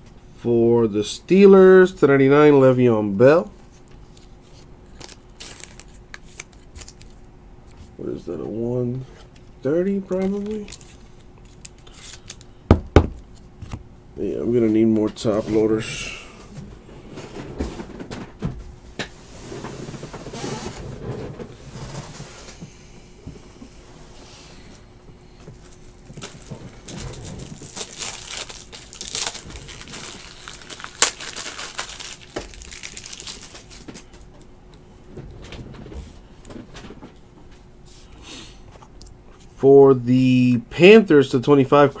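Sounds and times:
faint steady hum: 0.0s - 42.0s
plastic and cards rustling: 3.6s - 8.5s, 9.2s - 12.6s, 25.5s - 34.4s.

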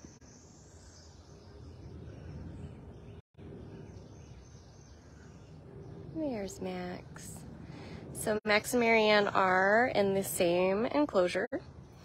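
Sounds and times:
low rumble: 1.4s - 10.7s.

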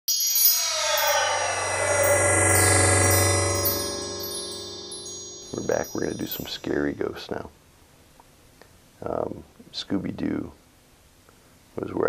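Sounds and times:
shimmering chimes: 0.1s - 7.1s
falling sweeps: 0.2s - 6.8s
low hum: 0.6s - 6.7s.

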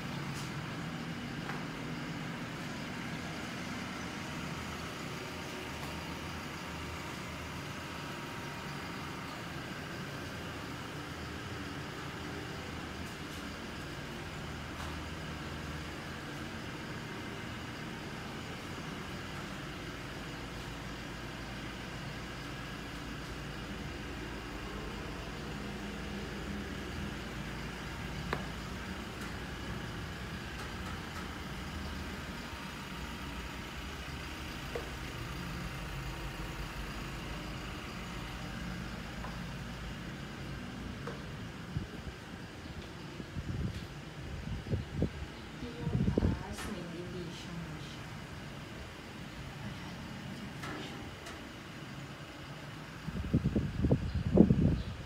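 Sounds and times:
engine rumble and hum: 0.0s - 55.0s.

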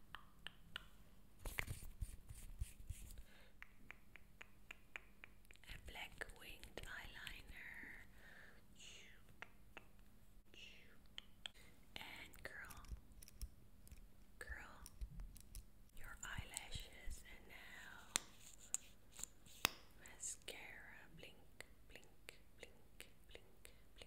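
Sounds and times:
faint whispering: 5.6s - 8.1s, 8.8s - 9.3s, 10.4s - 13.0s, 14.4s - 15.0s, 16.0s - 18.2s, 20.0s - 24.0s
soft clicks and taps of make-up items: 11.1s - 17.1s.

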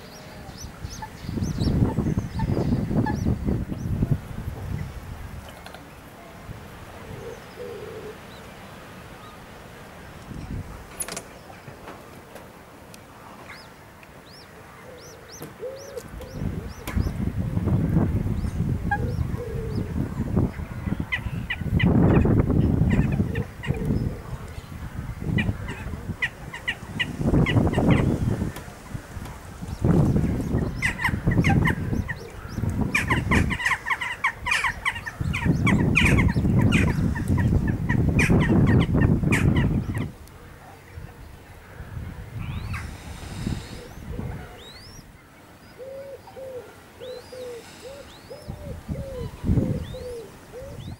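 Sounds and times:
bird chicks peeping: 0.0s - 4.1s, 13.4s - 40.2s, 42.0s - 50.9s.

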